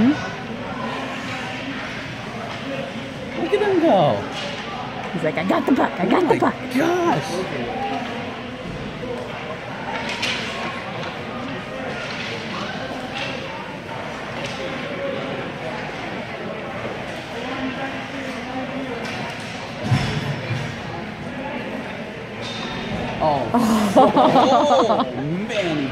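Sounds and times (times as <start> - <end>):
hockey sticks and pucks clacking: 9.9 - 13.5, 14.2 - 14.8, 18.2 - 20.1.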